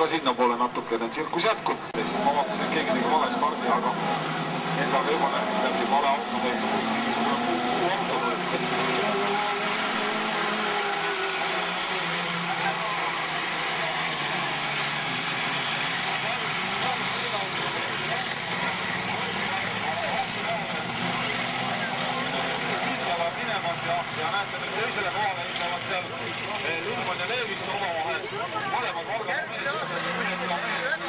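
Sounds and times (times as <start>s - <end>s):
racing buggy engines revving: 0.0s - 31.0s.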